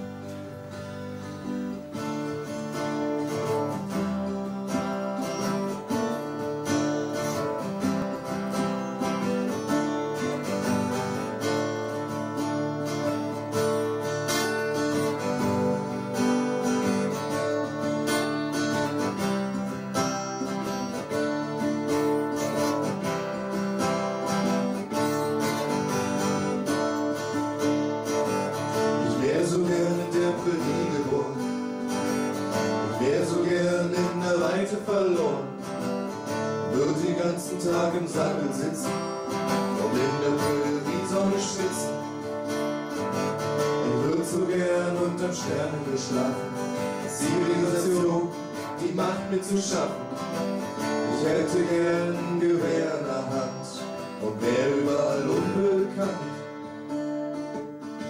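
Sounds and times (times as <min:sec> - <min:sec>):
acoustic guitars strummed: 0:00.0 - 0:58.0
man singing: 0:28.6 - 0:42.6, 0:43.5 - 0:56.9.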